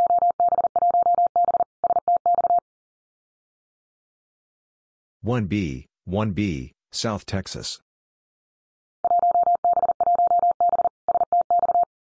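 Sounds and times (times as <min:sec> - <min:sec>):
morse code tone: 0:09.0 - 0:11.9.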